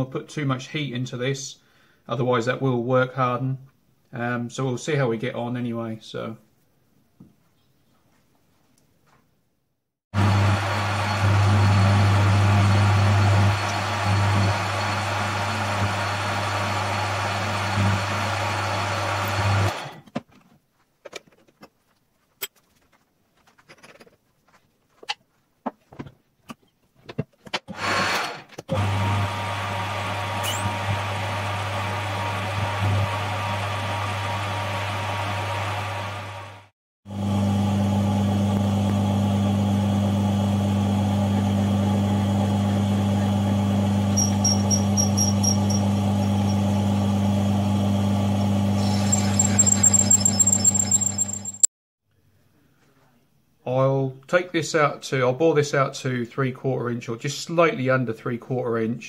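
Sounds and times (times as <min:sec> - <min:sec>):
metal lathe running: 0:10.2 - 0:19.8, 0:43.2 - 0:47.2, 0:48.5 - 0:51.7
high squeaks: 0:30.4 - 0:30.7, 0:44.1 - 0:46.6, 0:48.8 - 0:51.7.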